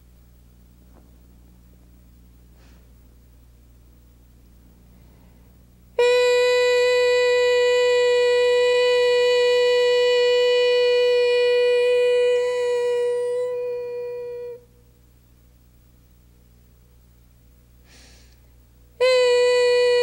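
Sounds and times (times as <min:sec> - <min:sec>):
woman chanting a held note: 0:06.0 - 0:14.8, 0:19.0 - 0:20.0.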